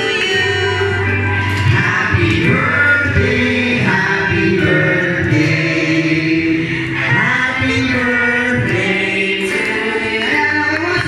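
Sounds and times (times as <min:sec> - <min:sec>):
choir singing long notes: 0:00.0 - 0:11.0.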